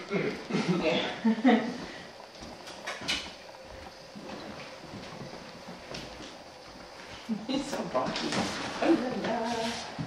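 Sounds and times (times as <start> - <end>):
footsteps on hardwood floor: 1.4 - 10.0.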